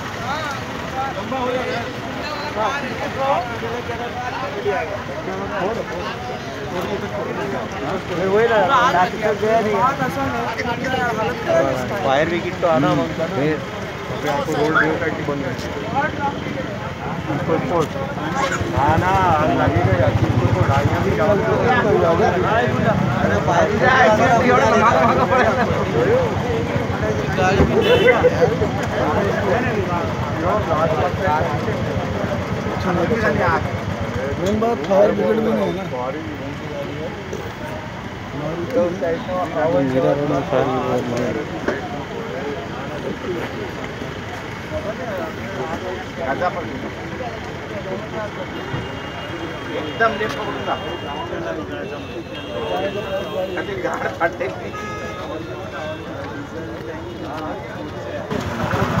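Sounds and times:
people talking: 0.0 - 59.0
road noise: 0.0 - 59.0.

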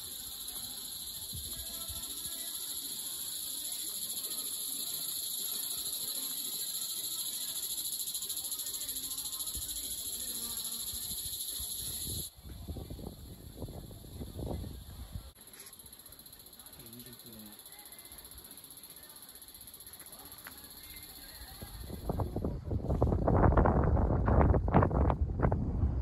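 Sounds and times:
insects chirring: 0.0 - 12.3, 13.1 - 22.4.

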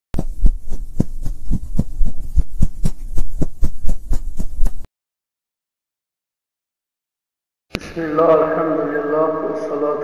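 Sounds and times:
deep rhythmic thumps: 0.2 - 4.8
low hum: 0.2 - 4.9.

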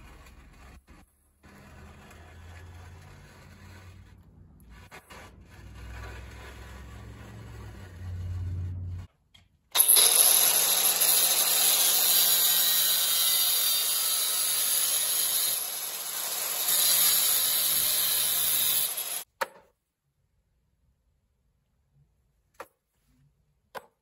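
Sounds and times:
angle grinder cutting steel: 9.8 - 19.3.

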